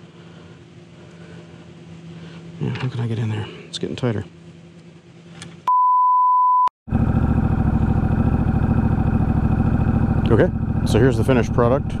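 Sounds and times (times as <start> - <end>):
motorcycle engine idling: 6.9 - 12.0.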